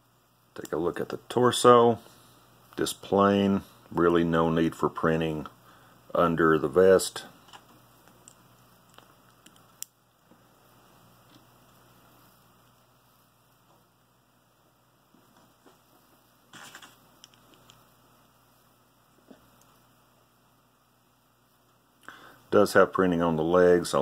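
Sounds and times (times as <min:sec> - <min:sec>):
faint plastic parts clicking: 0:07.4 - 0:10.4, 0:16.6 - 0:17.8.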